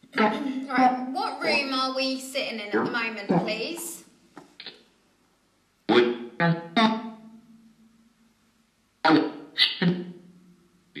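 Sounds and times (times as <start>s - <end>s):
echoing voice-like fragments: 0.0s - 4.0s
low steady hum: 0.0s - 4.3s.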